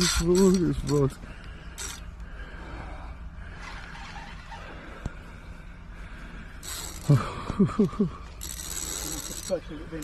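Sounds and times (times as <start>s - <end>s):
fishing reel clutch buzzing: 0.0s - 1.1s, 1.7s - 2.0s, 6.6s - 7.3s, 8.2s - 10.0s.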